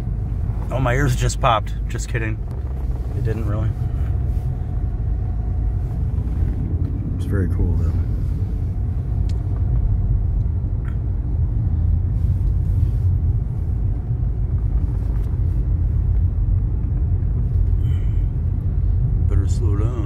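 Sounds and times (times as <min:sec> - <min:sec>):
car interior road rumble: 0:00.0 - 0:20.0.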